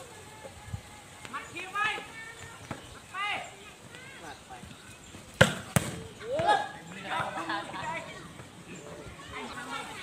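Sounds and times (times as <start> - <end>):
volleyball being struck: 5.4 - 6.5.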